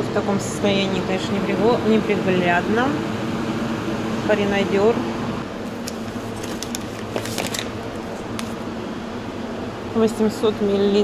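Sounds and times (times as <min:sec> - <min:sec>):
hum of fans: 0:00.0 - 0:11.0
plastic pouches rustling: 0:05.7 - 0:08.6.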